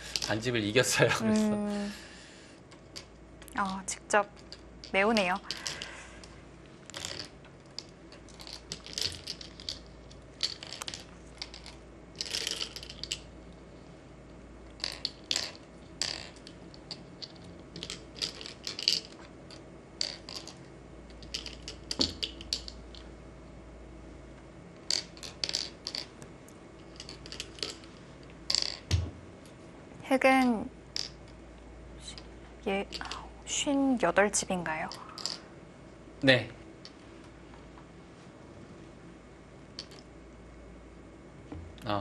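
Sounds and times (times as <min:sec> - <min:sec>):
game stones clicking on wooden board: 0:04.4 - 0:06.0, 0:06.9 - 0:13.3, 0:14.8 - 0:23.1, 0:24.9 - 0:26.1, 0:26.9 - 0:27.9, 0:34.9 - 0:35.4.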